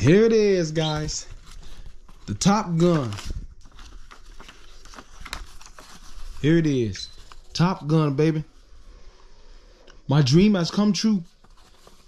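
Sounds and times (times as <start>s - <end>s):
paper rustling: 0.0s - 8.6s, 10.3s - 12.0s
paper ticks and crackles: 0.6s - 7.8s.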